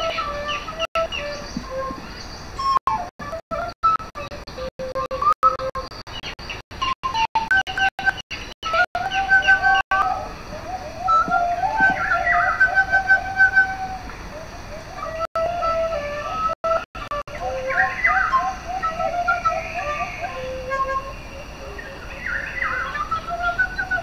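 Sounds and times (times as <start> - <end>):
flute trills and chirps: 0.0 - 24.0.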